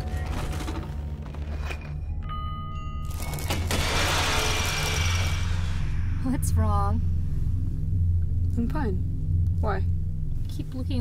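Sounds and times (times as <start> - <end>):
steady low hum: 3.6 - 11.0
electric drill whirring: 3.7 - 5.8.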